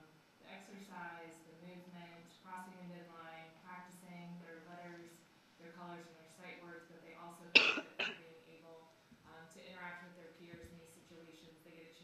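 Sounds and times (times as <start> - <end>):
person coughing loudly: 7.6 - 8.2.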